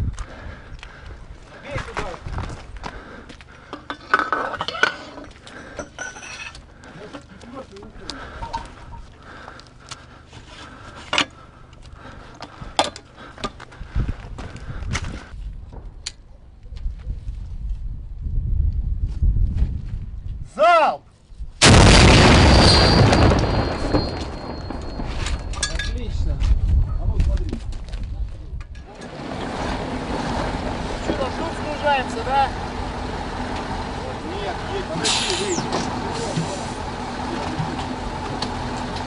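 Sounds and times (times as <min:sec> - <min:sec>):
muffled voices: 0:34.0 - 0:37.9.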